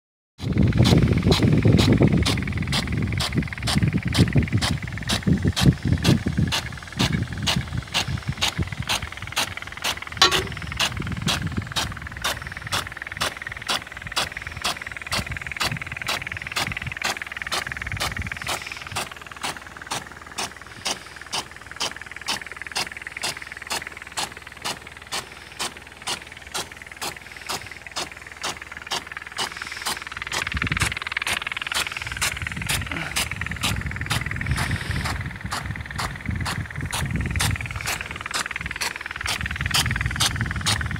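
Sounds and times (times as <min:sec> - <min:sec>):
sprinkler arm ticking: 0:00.4 - 0:40.9
water spray hissing: 0:00.8 - 0:40.9.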